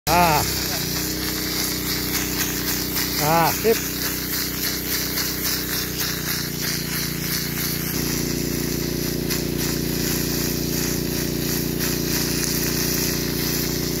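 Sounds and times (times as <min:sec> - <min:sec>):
high-pressure water jet hissing: 0:00.1 - 0:14.0
pump engine drone: 0:00.1 - 0:14.0.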